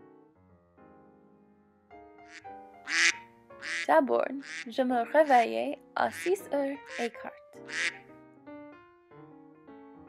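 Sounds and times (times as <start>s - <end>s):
soft piano music: 0.0s - 10.0s
raspy quack-like calls: 2.3s - 8.0s.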